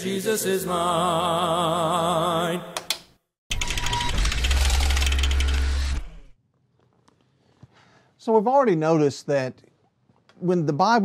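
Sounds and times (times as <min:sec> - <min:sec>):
mechanical ratcheting clatter: 0:03.5 - 0:06.2.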